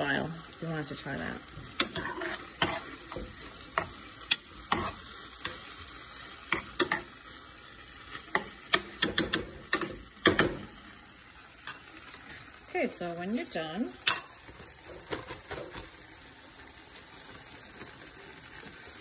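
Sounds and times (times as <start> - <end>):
meat sizzling: 0.0 - 19.0
metal spoon scraping frying pan: 1.4 - 7.3, 11.6 - 12.4
spoon clicking against pan: 6.5 - 7.1, 8.3 - 10.6.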